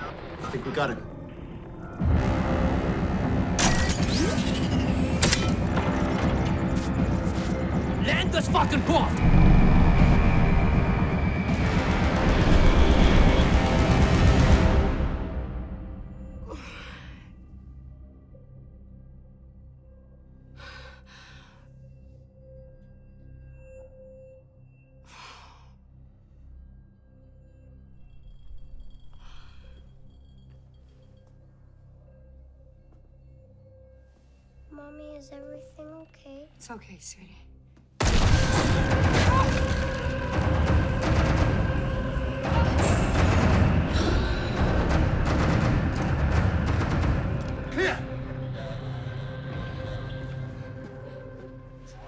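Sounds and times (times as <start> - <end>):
pulsing low engine rumble: 0.0 - 16.5
low film score drone: 0.0 - 36.6, 37.4 - 52.0.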